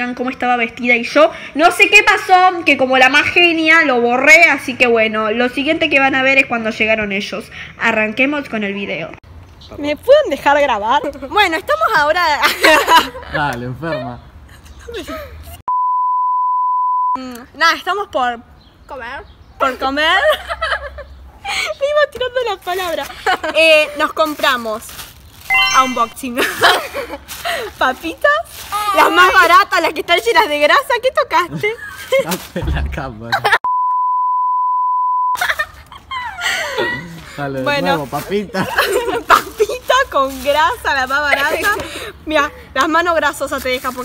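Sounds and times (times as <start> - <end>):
steady test-tone beep: 15.7 - 17.2, 25.5 - 26.2, 33.6 - 35.4.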